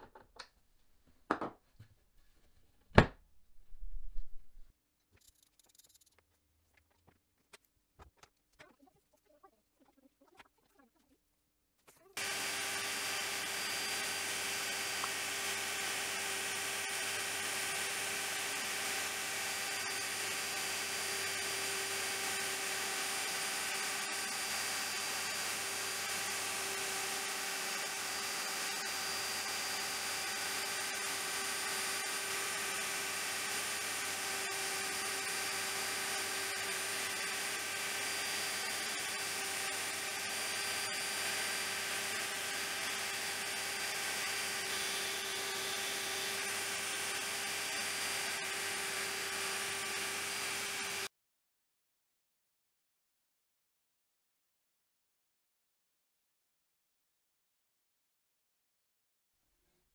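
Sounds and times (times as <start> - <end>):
hiss of cutting wood: 12.2 - 51.1
router whine: 12.2 - 51.1.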